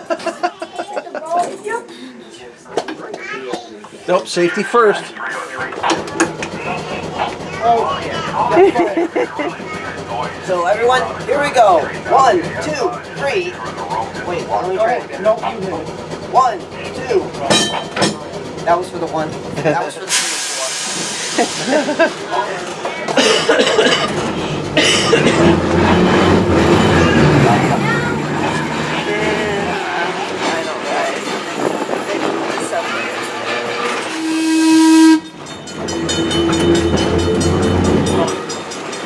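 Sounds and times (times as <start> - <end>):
trolley car wheels rumbling: 5.5 - 39.0
loud horn blast: 34.0 - 37.9.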